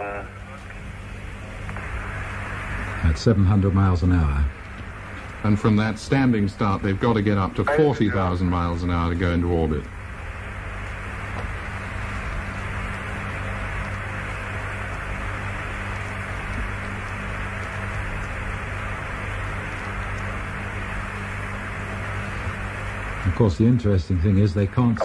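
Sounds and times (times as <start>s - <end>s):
radio hiss with low hum: 0.0s - 25.0s.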